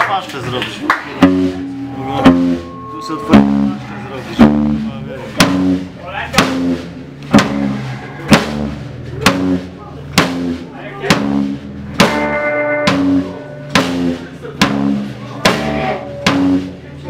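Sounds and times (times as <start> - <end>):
voices chattering: 0.0 - 6.7, 12.5 - 17.0
guitar and bass chords: 0.8 - 17.0
live rock band playing: 0.8 - 17.0
drum hits: 1.0 - 17.0.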